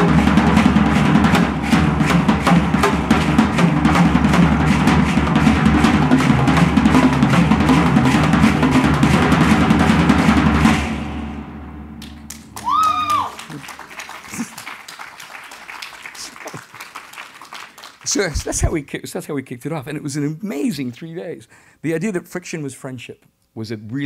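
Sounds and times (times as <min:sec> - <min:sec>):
upbeat drum-driven music: 0:00.0 - 0:14.6, 0:18.1 - 0:18.8.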